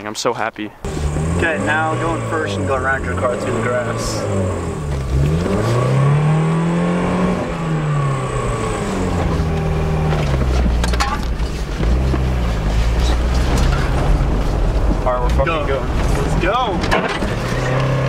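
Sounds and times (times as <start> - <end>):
car engine revving: 0.8 - 18.0.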